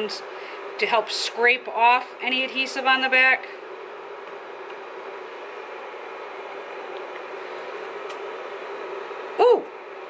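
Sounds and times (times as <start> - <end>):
induction heater fan humming: 0.0 - 10.0.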